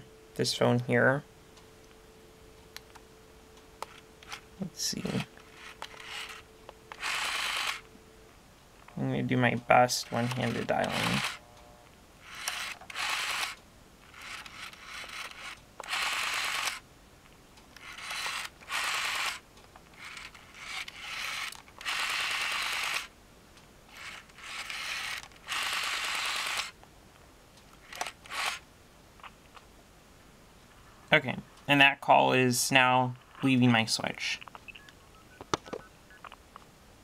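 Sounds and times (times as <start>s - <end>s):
rotary dial whirring and clicking: 1.5s - 8.0s, 8.8s - 16.9s, 17.5s - 26.8s, 27.5s - 29.7s.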